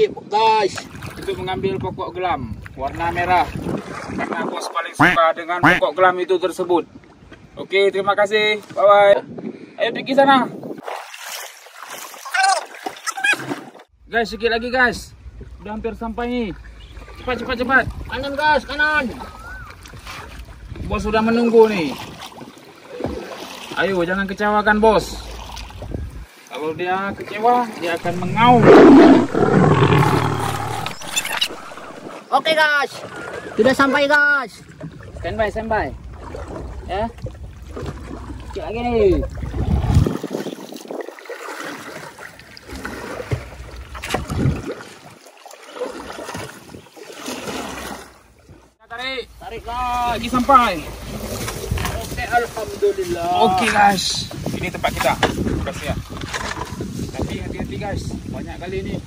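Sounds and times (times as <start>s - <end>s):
wind rumble on microphone: 0.0s - 5.1s, 6.8s - 10.9s, 16.9s - 18.4s, 19.5s - 21.4s, 24.7s - 27.2s, 28.0s - 32.3s, 34.7s - 41.2s, 44.0s - 44.7s, 50.8s - 59.0s
paddle splashing through water: 0.7s - 1.3s, 3.4s - 4.4s, 10.8s - 13.9s, 19.1s - 20.8s, 21.8s - 23.8s, 36.0s - 38.6s, 39.2s - 48.7s, 50.8s - 52.8s
paddle stroking through water: 27.8s - 32.3s, 39.4s - 48.6s.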